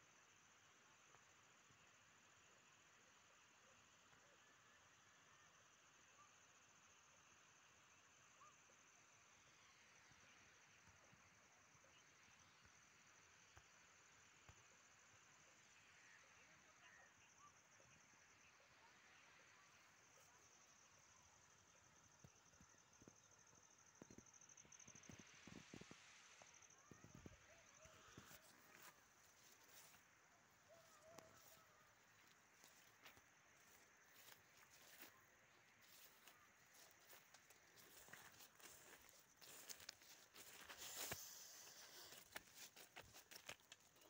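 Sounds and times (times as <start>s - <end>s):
faint clicks and rustles: 24.0s - 44.0s.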